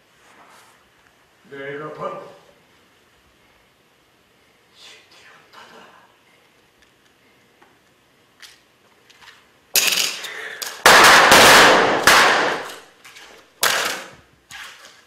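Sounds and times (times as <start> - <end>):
blank gunshots: 10.9 - 12.8.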